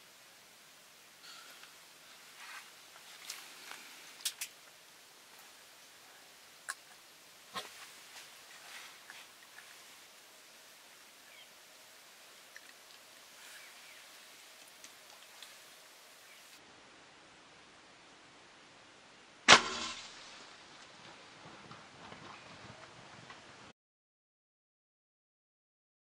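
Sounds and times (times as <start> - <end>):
rifle shot: 19.5 - 20.2.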